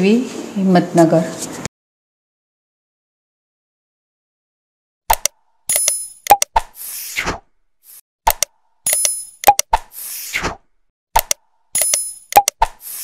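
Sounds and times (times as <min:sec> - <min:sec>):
click-like pops: 0:05.1 - 0:06.7, 0:11.2 - 0:12.8.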